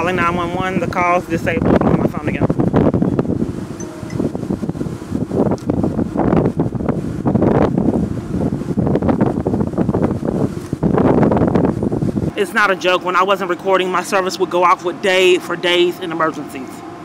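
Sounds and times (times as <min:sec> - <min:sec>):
wind noise on microphone: 0:00.0 - 0:14.6.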